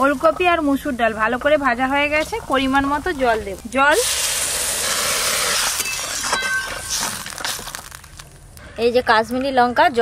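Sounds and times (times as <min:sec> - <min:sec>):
water hissing in hot pan: 0:00.0 - 0:08.0.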